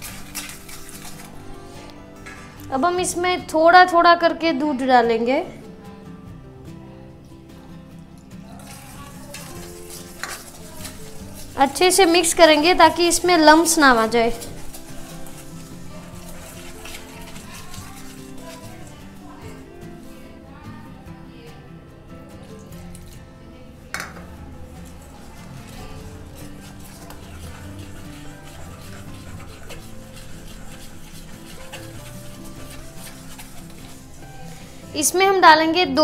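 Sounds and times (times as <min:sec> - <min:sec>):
whisk scraping metal bowl: 0:00.0 - 0:02.6, 0:08.5 - 0:20.2, 0:24.0 - 0:35.3
soft background music: 0:00.0 - 0:36.0.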